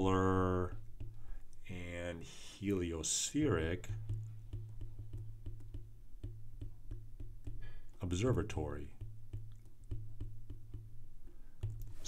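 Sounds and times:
stylus tapping on glass screen: 0:00.6 - 0:01.5, 0:03.8 - 0:12.0.

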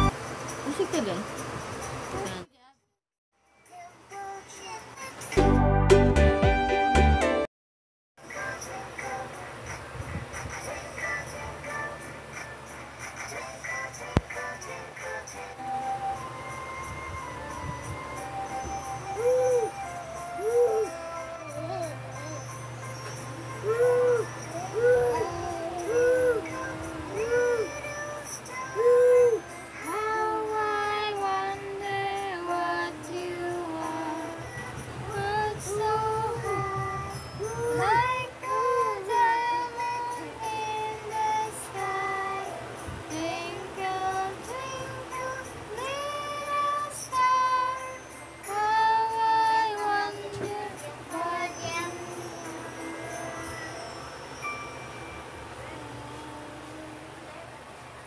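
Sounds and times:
musical accompaniment: 0:05.4 - 0:07.5
faint steady hum: 0:08.2 - 0:58.0
high child-like singing voice: 0:19.2 - 0:22.5, 0:23.6 - 0:34.4, 0:35.1 - 0:42.4, 0:43.1 - 0:52.7, 0:55.6 - 0:57.5.

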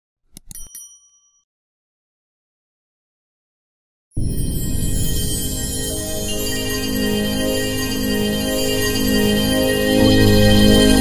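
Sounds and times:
bright bell ding: 0:00.5 - 0:01.4, 0:04.2 - 0:11.0.

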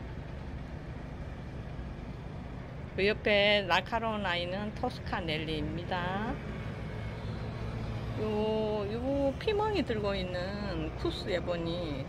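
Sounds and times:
low city rumble: 0:00.0 - 0:12.0.

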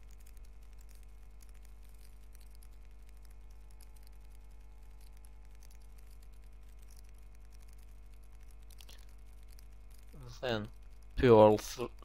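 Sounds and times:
knitting needles clicking: 0:00.0 - 0:11.2
steady low hum: 0:00.0 - 0:12.0.

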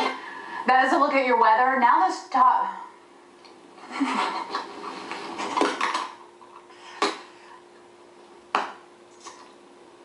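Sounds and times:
hard objects clattering: 0:05.4 - 0:06.2.

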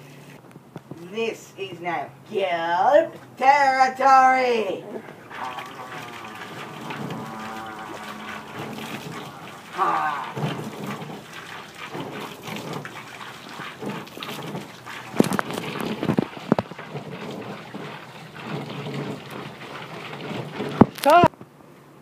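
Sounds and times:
hose water splashing: 0:05.1 - 0:21.3.

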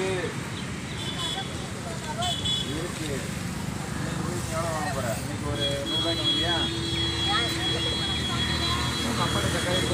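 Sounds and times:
auto rickshaw engine rumble: 0:00.0 - 0:09.9.

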